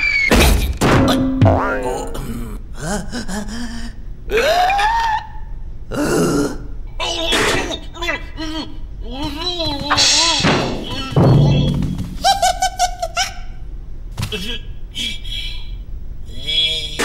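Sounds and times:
cartoon character vocalizations: 1.5s - 13.6s
long rising cry: 2.1s - 6.7s.

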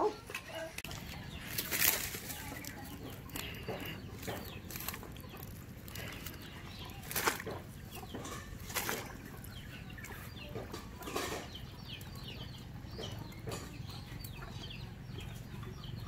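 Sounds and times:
chickens cheeping: 0.0s - 16.0s.

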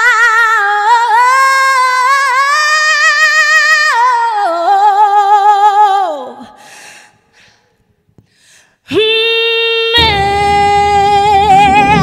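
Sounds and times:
woman singing with vibrato: 0.0s - 6.6s, 8.8s - 12.0s.

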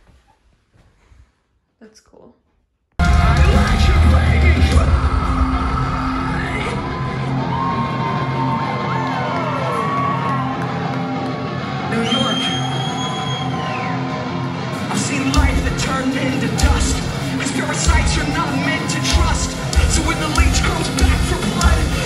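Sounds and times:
live rock band playing: 3.0s - 7.2s, 13.4s - 22.0s
crowd cheering and whooping: 3.0s - 22.0s.

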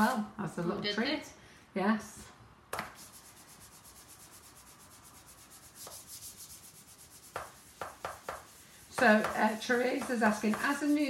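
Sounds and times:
cake smoother swishing on icing: 2.9s - 11.0s.

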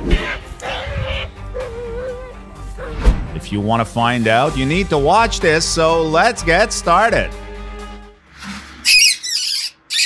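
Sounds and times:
background music: 0.0s - 8.3s
small animal squealing: 8.8s - 10.0s.

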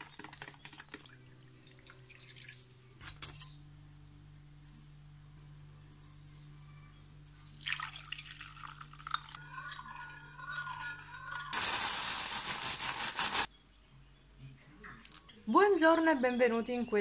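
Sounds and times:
low steady hum: 0.0s - 11.6s
milk pouring into a ceramic cup: 7.4s - 10.8s.

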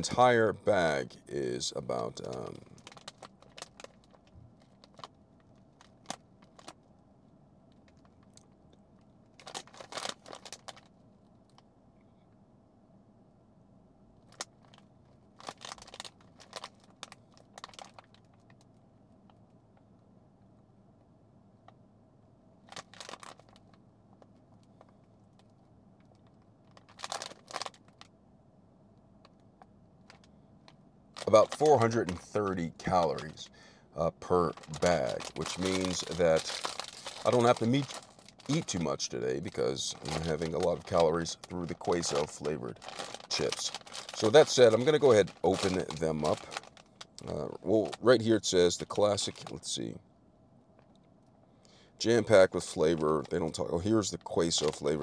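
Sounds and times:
faint room hum: 0.0s - 55.0s
plastic bag crinkling: 1.9s - 6.8s, 9.4s - 10.9s, 14.3s - 18.6s, 22.6s - 23.8s, 26.2s - 28.1s, 31.1s - 49.8s, 52.1s - 55.0s.

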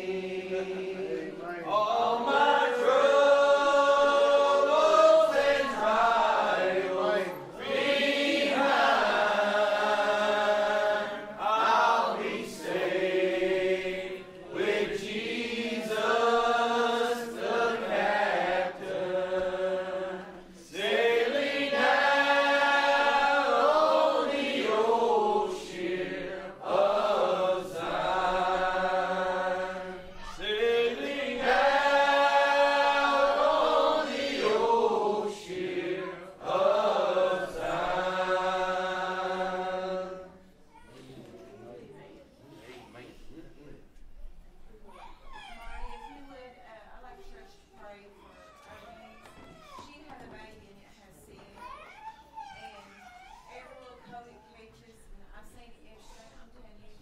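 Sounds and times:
congregation singing: 0.0s - 41.4s.

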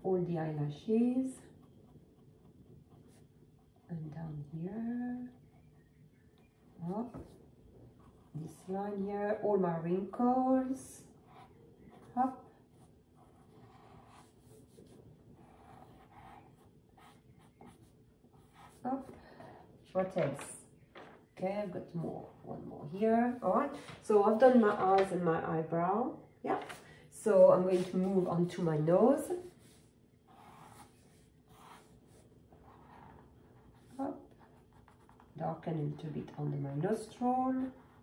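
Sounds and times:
pencil scratching on paper: 10.2s - 19.5s, 27.3s - 35.4s, 36.9s - 38.0s.

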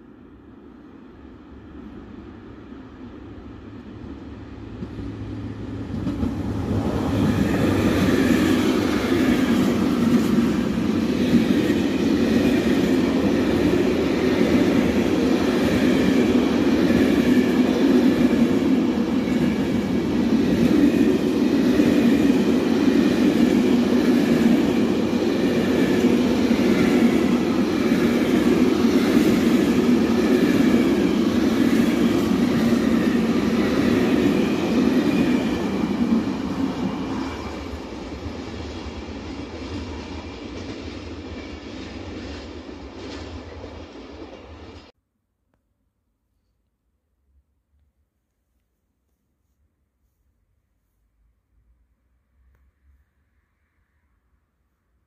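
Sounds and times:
train wheels rumbling on rail: 1.1s - 44.9s.

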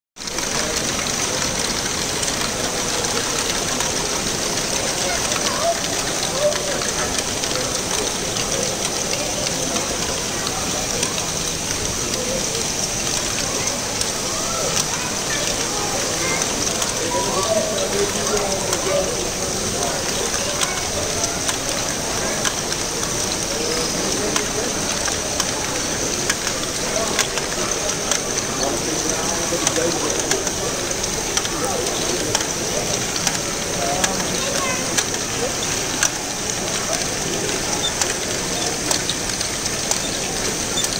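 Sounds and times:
crowd chatter: 0.2s - 40.9s
geared mechanism clicks: 0.2s - 40.9s.

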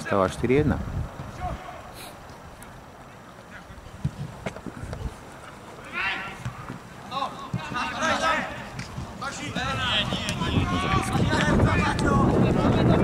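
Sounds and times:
open-air background: 0.0s - 13.0s
players shouting: 5.5s - 13.0s.

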